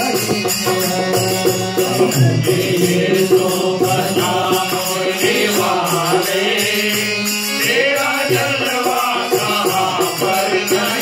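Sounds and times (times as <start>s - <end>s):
group singing devotional song: 0.0s - 11.0s.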